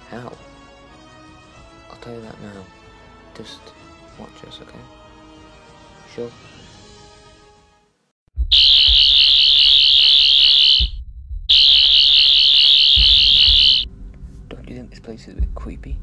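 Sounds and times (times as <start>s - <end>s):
warbling alarm blasts: 8.5s - 13.9s.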